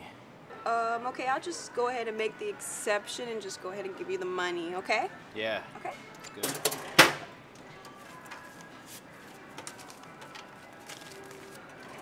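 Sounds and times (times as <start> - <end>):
cash register drawer clang: 6.2 - 7.3.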